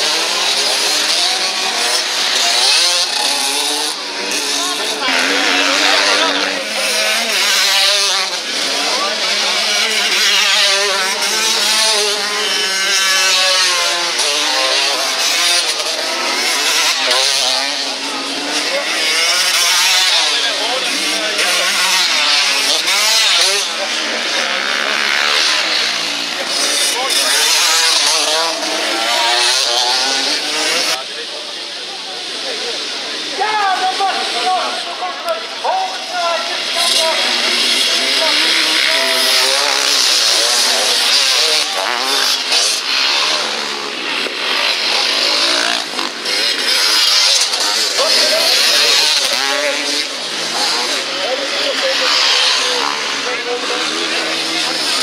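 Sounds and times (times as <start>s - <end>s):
motocross motorcycles revving: 0.0s - 55.0s.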